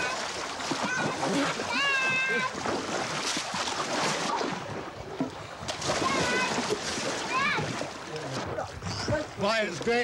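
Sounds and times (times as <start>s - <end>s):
water splashing in pool: 0.0s - 10.0s.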